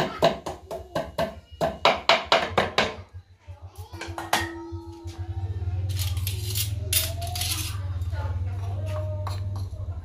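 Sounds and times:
kitchenware clinking: 5.9s - 8.1s.

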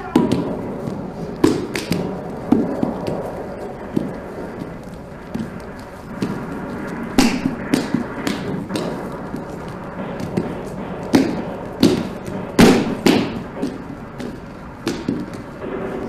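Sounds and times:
bare feet stamping on stage floor: 0.0s - 16.0s.

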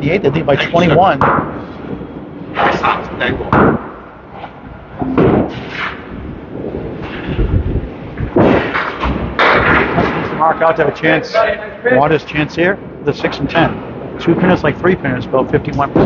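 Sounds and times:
people talking: 0.0s - 1.2s, 2.6s - 3.5s, 10.0s - 16.0s
bowling balls and pins crashing: 5.0s - 10.4s.

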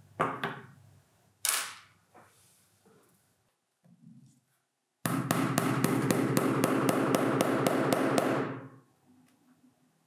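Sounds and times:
hammer striking nails: 5.0s - 8.6s.

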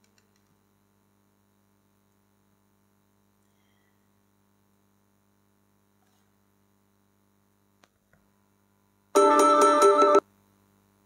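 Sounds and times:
phone ringtone jingle: 9.2s - 10.2s.

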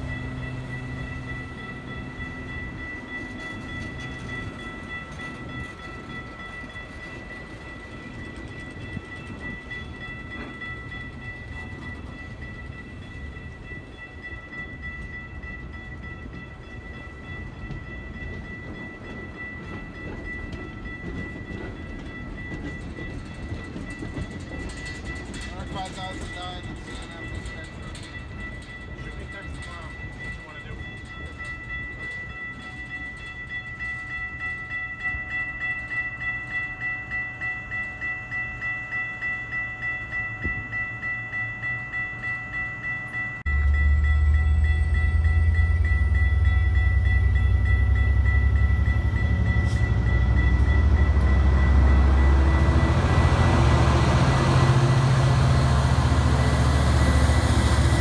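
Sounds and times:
train low rumble: 0.0s - 58.0s
pulsing high ringing tone: 31.2s - 58.0s.

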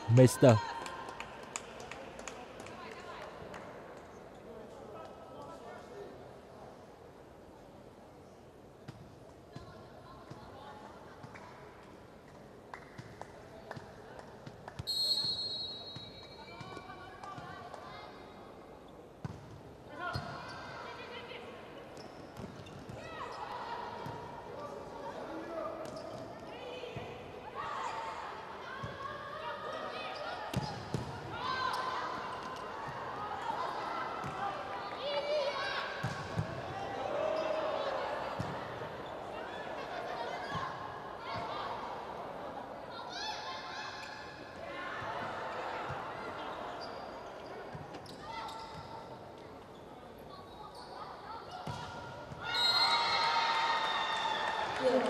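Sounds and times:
crowd voices and cheering: 0.0s - 1.2s, 52.4s - 55.0s
referee whistle blast: 14.9s - 16.1s.

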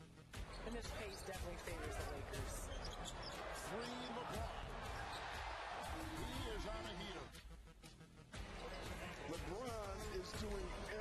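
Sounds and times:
arena crowd noise: 0.6s - 7.3s, 8.4s - 11.0s.

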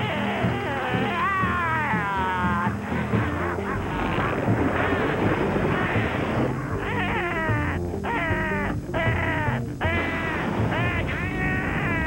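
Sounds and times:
cartoon music: 0.0s - 12.0s.

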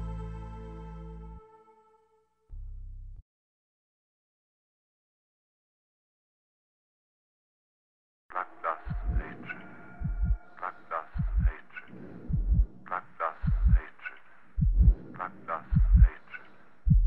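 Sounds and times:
heartbeat thumps: 8.8s - 9.4s, 10.0s - 10.4s, 11.1s - 11.6s, 12.2s - 12.8s, 13.4s - 13.9s, 14.6s - 16.2s.

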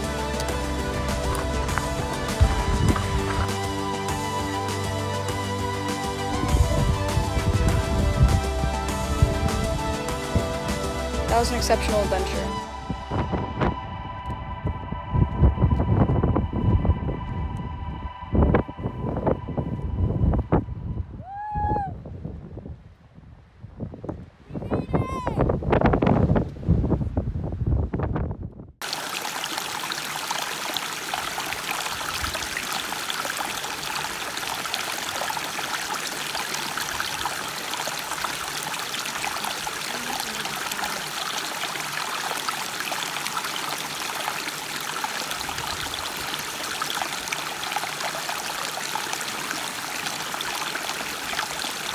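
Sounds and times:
creek trickling over stones: 0.0s - 12.6s, 28.8s - 51.9s
low rumble: 0.5s - 4.3s, 12.5s - 21.2s.

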